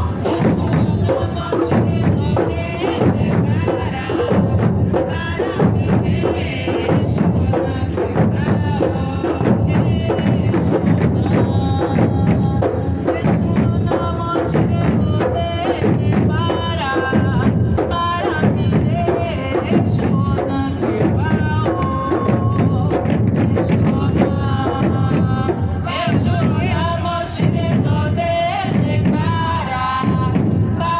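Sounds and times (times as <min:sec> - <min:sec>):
group singing: 0:00.0 - 0:30.9
large drums struck with sticks: 0:00.0 - 0:30.9.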